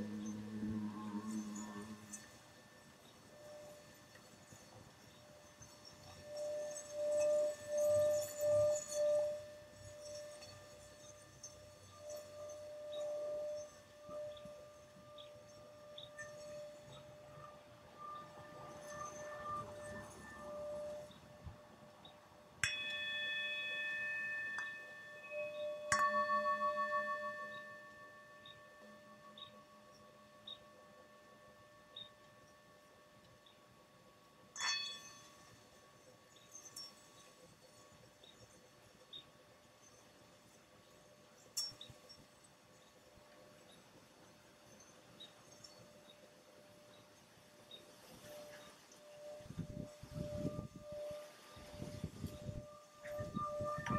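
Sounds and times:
singing bowls ringing: 0.0 - 53.9
singing bowl strikes: 6.0 - 33.6, 34.5 - 37.4, 47.7 - 53.9.

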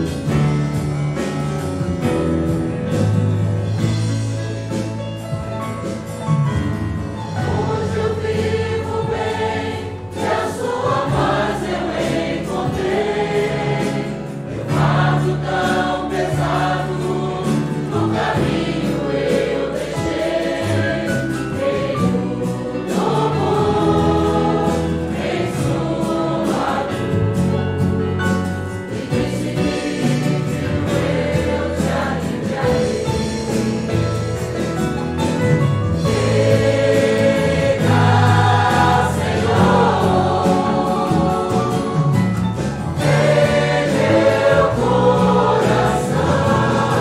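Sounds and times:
choir singing a hymn: 0.0 - 4.8, 7.2 - 35.0, 35.8 - 47.0
instrumental accompaniment: 0.0 - 47.0.

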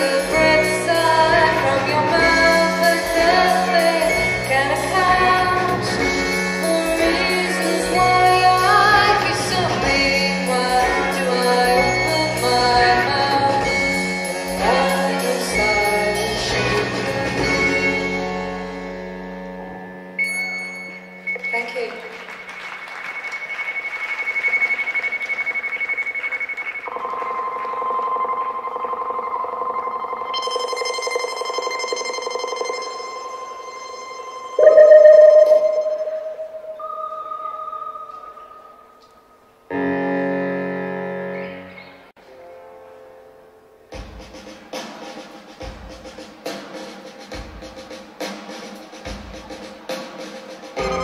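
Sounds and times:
keyboard and effects drones: 26.6 - 39.5.

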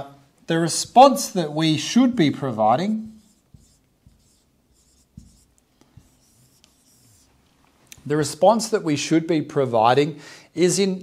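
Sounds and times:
marker writing on whiteboard: 2.2 - 7.4.

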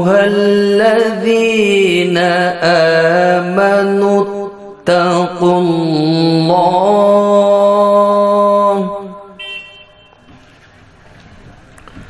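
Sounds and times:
man chanting melodically: 0.0 - 9.6.

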